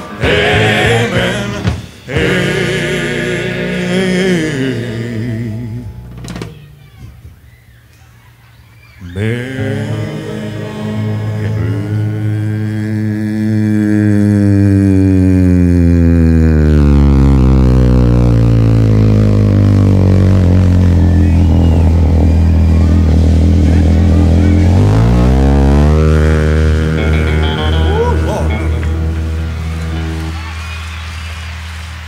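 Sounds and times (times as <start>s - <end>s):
deep bass voice singing: 0.0s - 6.3s, 9.0s - 29.5s
band sustaining chords: 0.0s - 6.4s, 9.4s - 12.9s, 16.7s - 30.4s.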